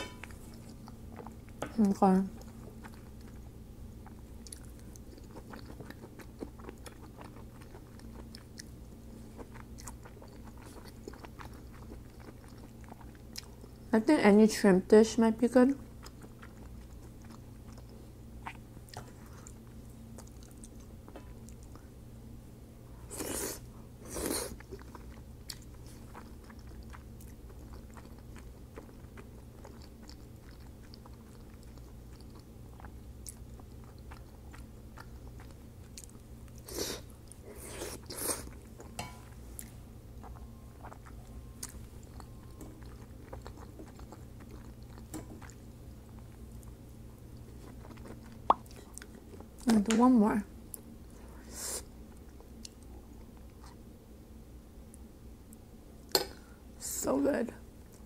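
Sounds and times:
close chewing and mouth sounds: 0.2s - 13.9s, 15.7s - 22.0s, 23.0s - 49.9s, 50.6s - 53.9s, 57.7s - 58.0s.

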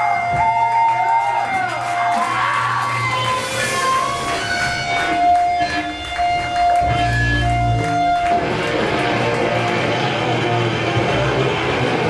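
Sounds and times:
crowd cheering: 0.0s - 12.0s
electric guitar bending notes: 2.8s - 12.0s.

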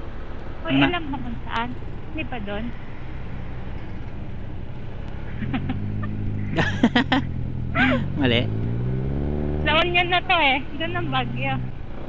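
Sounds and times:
road noise: 0.0s - 12.0s
scooter engine rumbling: 0.0s - 12.0s.

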